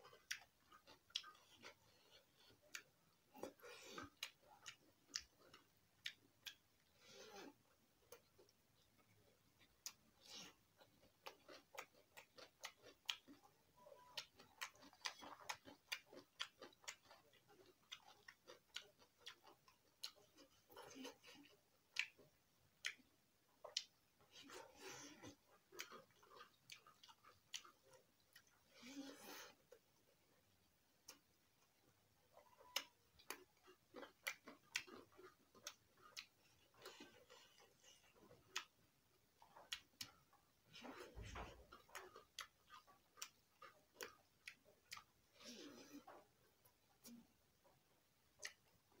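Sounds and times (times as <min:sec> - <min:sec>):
wet chewing and lip smacking: 0:00.0 - 0:49.0.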